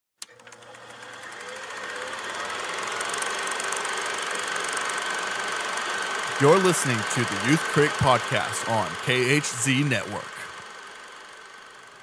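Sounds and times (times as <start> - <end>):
machine whirring hum with ticking: 0.2 - 12.0.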